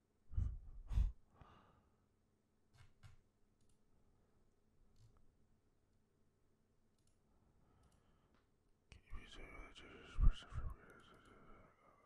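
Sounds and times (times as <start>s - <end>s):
person's low breathy voice: 0.3s - 1.2s, 9.0s - 12.0s.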